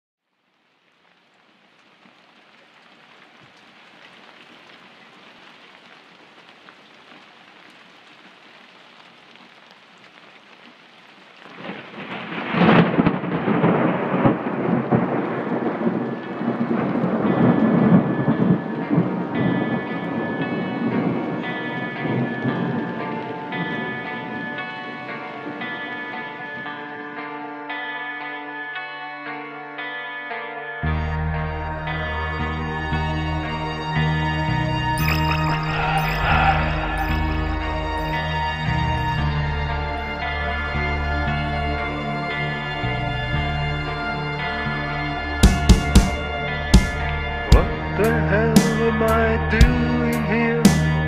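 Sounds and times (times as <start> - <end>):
rain falling: 0.2 - 27.3, 30.9 - 51.0
thunderclap rolling rumble: 11.5 - 24.5
sustained musical notes: 15.6 - 51.0.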